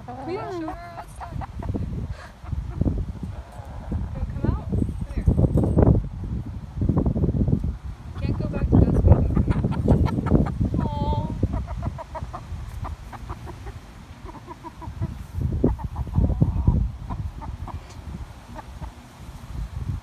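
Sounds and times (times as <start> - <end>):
hen clucking: 0.0 - 4.6, 8.1 - 19.0.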